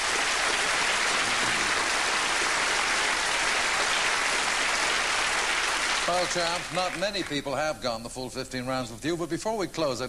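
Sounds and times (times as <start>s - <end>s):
audience applauding: 0.0s - 7.6s.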